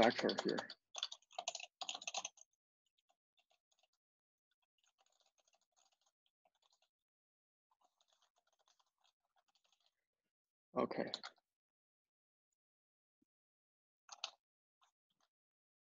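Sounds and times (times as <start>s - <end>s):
typing on computer keyboard: 0.0s - 4.0s, 4.7s - 6.9s, 14.1s - 15.3s.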